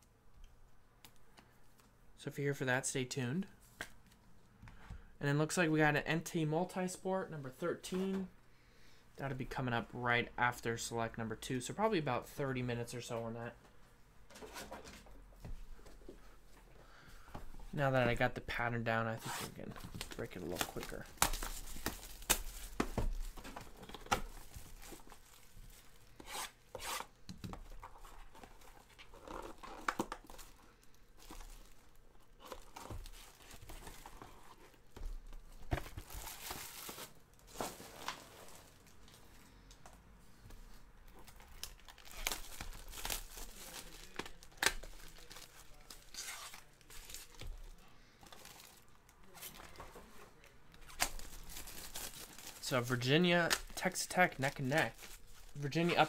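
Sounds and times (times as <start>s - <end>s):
wrappers crinkling: 41.2s - 49.8s, 50.4s - 56.0s
card packs tearing open: 41.4s - 47.5s, 50.8s - 56.0s.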